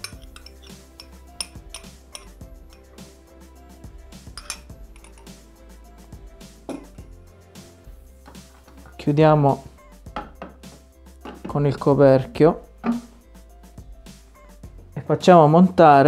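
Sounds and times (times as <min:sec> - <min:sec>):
glass cup clinking on steel bowl: 0:00.0 - 0:02.8, 0:04.4 - 0:05.3
soft background music: 0:00.0 - 0:16.0.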